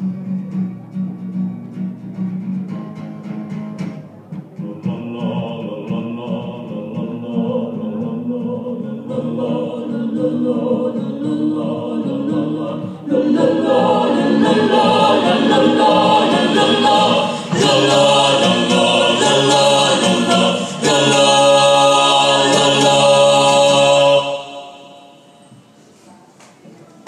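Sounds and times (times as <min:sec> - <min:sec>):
mixed vocal group singing: 0:04.6 - 0:25.7.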